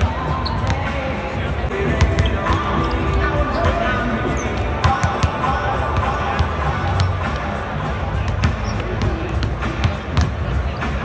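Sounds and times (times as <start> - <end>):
music over sound system: 0.0 - 11.0
voices: 0.0 - 11.0.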